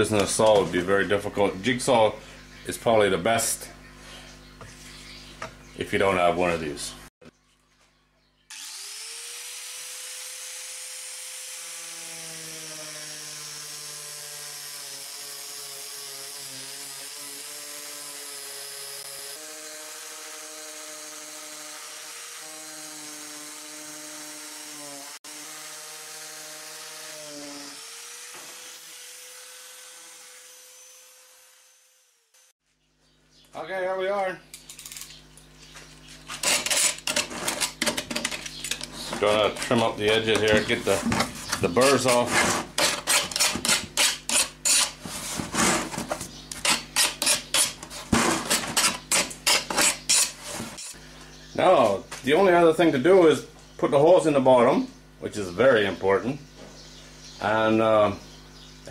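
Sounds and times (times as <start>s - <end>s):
angle grinder cutting sheet metal: 8.5s - 32.5s, 36.3s - 51.0s.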